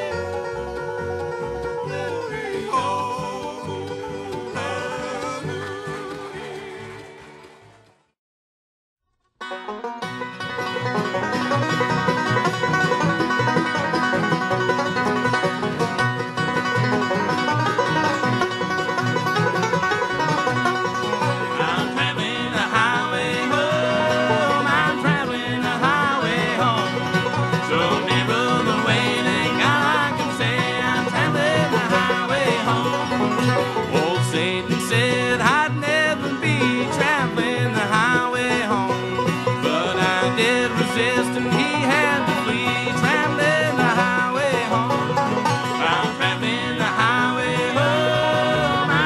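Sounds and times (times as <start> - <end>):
bluegrass string band playing: 0.0 - 8.0, 9.4 - 49.0
banjo rolls: 0.0 - 8.2, 9.4 - 49.0.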